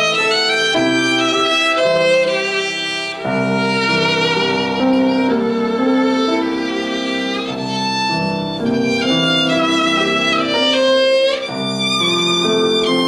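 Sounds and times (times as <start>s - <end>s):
piano accompaniment: 0.0s - 13.0s
violin melody with vibrato: 0.0s - 13.0s.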